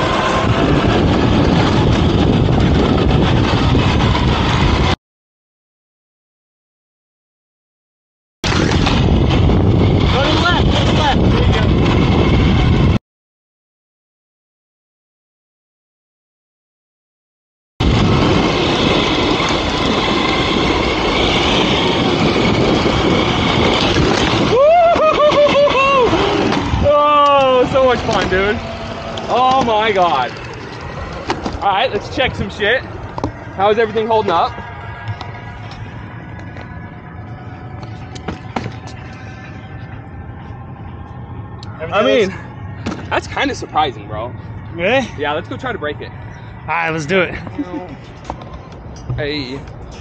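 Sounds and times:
skateboard wheels rolling on asphalt: 0:00.0 - 0:04.9, 0:17.8 - 0:40.8
wind on microphone: 0:00.0 - 0:05.0, 0:08.4 - 0:13.0, 0:17.8 - 0:43.6
faint high whine: 0:17.8 - 0:49.8
person whooping: 0:24.4 - 0:27.5.

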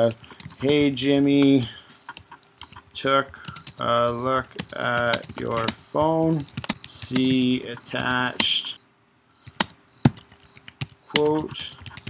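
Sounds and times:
computer keyboard keystrokes: 0:00.0 - 0:08.6, 0:09.4 - 0:12.0.

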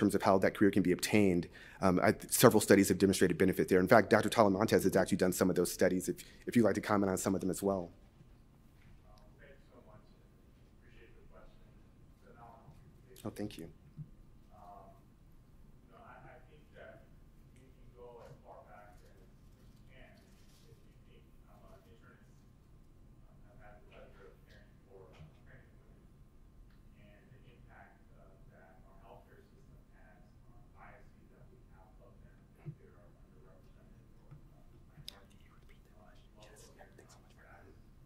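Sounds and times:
person whispering: 0:35.0 - 0:37.8.

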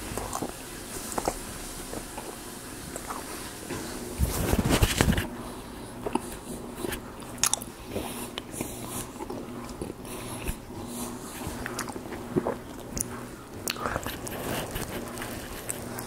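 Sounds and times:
wet chewing of food: 0:00.0 - 0:16.0.

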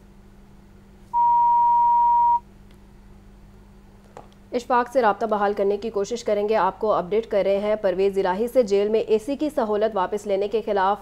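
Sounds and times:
steady electronic beep: 0:01.2 - 0:02.4.

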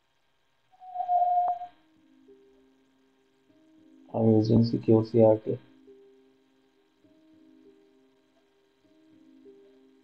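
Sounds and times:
electronic beep: 0:00.8 - 0:01.7.

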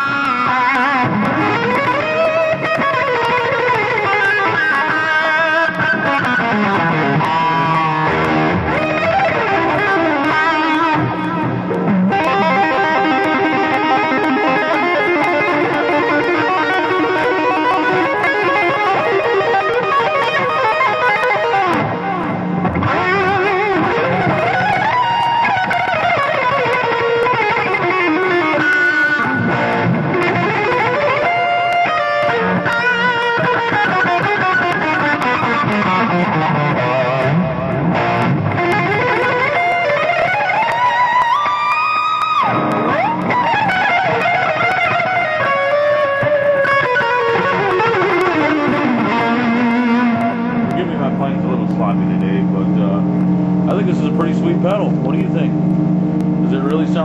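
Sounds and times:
overdriven electric guitar lead: 0:00.0 - 0:57.0.

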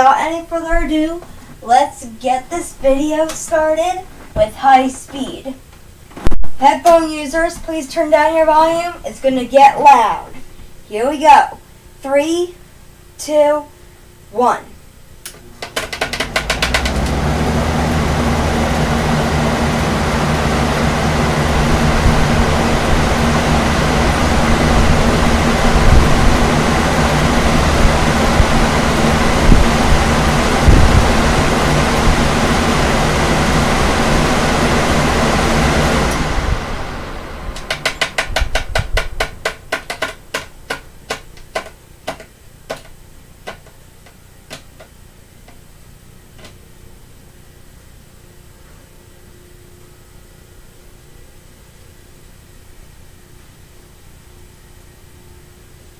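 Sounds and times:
fans clicking coasting down: 0:00.0 - 0:05.9, 0:15.2 - 0:45.7
electric fans rushing air: 0:00.0 - 0:55.9.

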